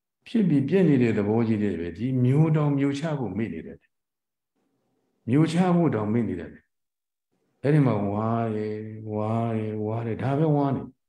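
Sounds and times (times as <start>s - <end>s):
man chanting: 7.6s - 11.0s.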